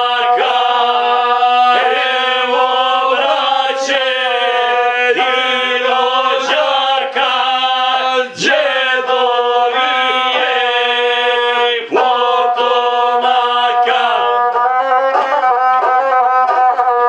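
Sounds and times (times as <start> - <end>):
men singing in harmony: 0.0 - 17.0.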